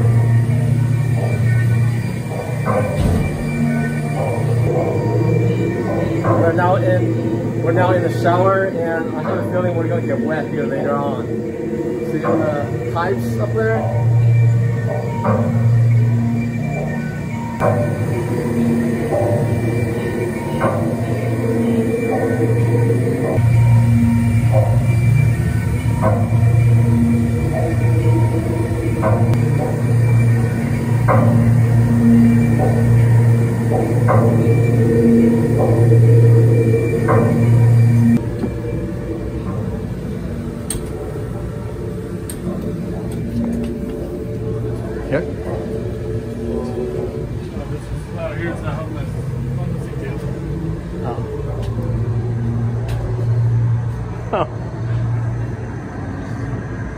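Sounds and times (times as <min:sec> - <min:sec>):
loud low pulsing drone: 0:00.0 - 0:56.9.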